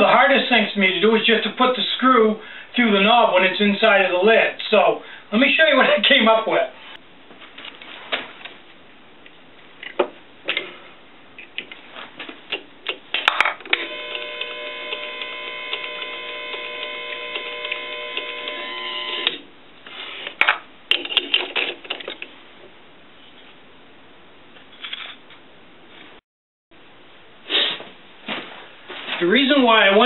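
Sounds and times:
electric power driver running: 0:13.7 - 0:19.4
clicks and clatter of parts: 0:20.3 - 0:22.3, 0:24.6 - 0:25.4.

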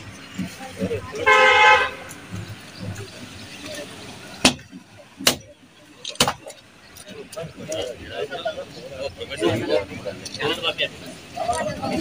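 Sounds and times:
vehicle horn honk: 0:01.2 - 0:02.1.

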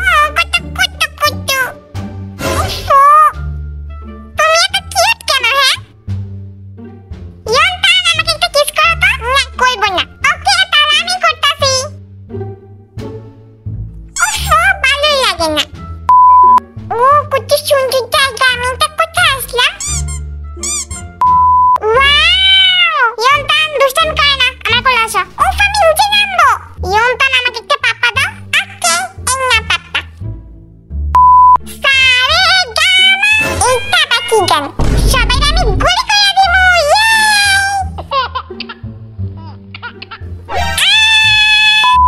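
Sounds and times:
background music: 0:00.0 - 0:42.0
steady beep: 0:16.1 - 0:16.6, 0:21.2 - 0:21.8, 0:31.2 - 0:31.6
squeaky pitched-up voice calls: 0:19.7 - 0:21.1, 0:39.8 - 0:42.0.

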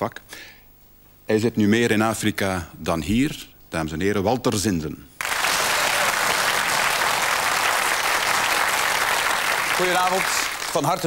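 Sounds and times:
studio audience applauding: 0:05.2 - 0:11.0.

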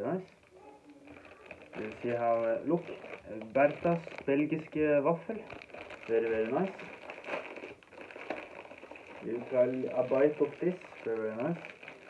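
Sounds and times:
plastic bag crinkling: 0:00.3 - 0:12.0.

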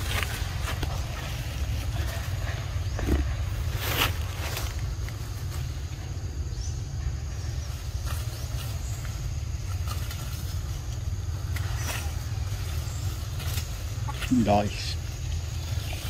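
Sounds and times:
rustling and snapping branches: 0:00.0 - 0:02.4, 0:03.6 - 0:06.0, 0:07.9 - 0:14.5.

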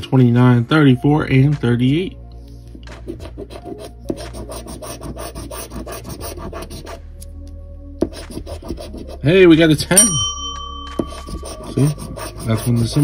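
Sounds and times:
coin scratching lottery ticket: 0:03.0 - 0:07.0, 0:08.0 - 0:09.2, 0:10.9 - 0:13.0.

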